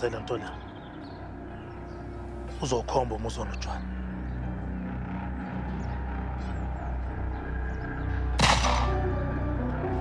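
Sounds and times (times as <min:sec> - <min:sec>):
low steady drone: 0:00.0 - 0:10.0
gunshot with ringing tail: 0:08.4 - 0:09.0.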